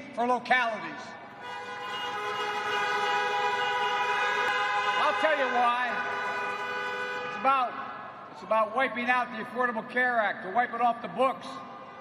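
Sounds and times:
many car horns honking: 1.4s - 7.8s.

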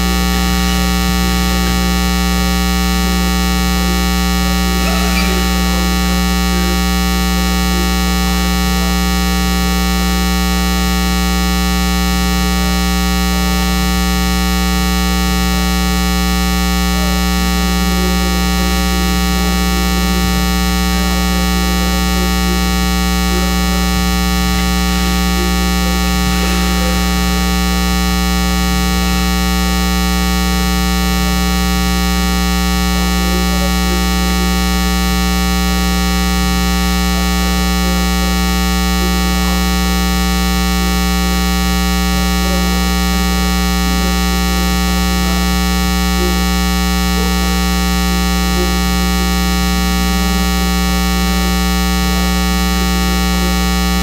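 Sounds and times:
loud electrical buzz: 0.0s - 54.0s.

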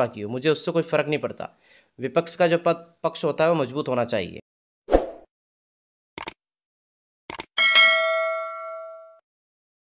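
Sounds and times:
notification bell ding: 7.6s - 9.2s.

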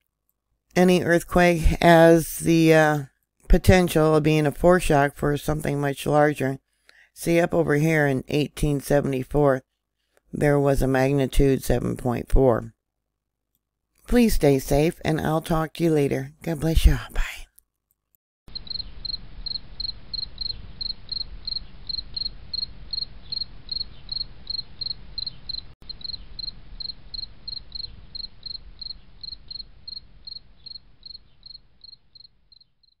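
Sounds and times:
cricket chirping: 18.5s - 33.0s.

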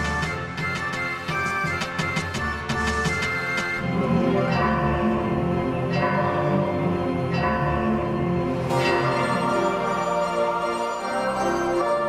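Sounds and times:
slow instrumental chords: 0.0s - 12.0s.

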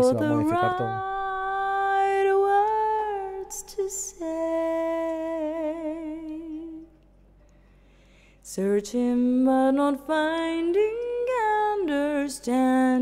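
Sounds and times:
solo singing voice with reverb: 0.0s - 7.0s, 8.5s - 13.0s.

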